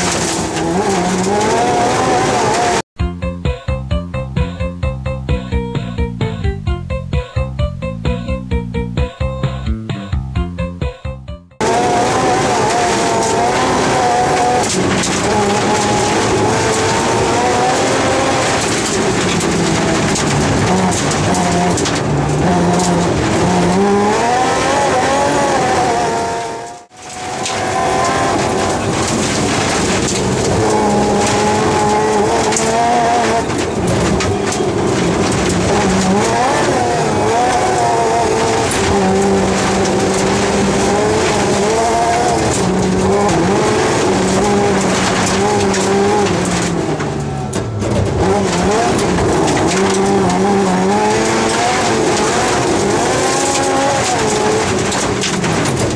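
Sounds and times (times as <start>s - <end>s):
rally car engine accelerating: 0.0s - 2.9s, 11.6s - 55.9s.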